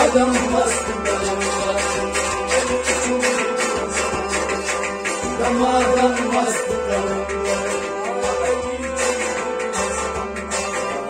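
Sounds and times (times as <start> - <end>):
harmonium chords: 0.0 - 11.0
light percussion beat: 0.0 - 11.0
plucked strings: 0.0 - 11.0.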